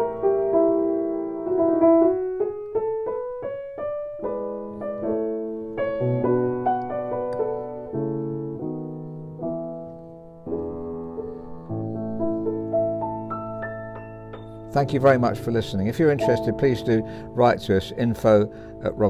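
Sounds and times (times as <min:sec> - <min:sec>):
grand piano played slowly: 0:00.0 - 0:19.0.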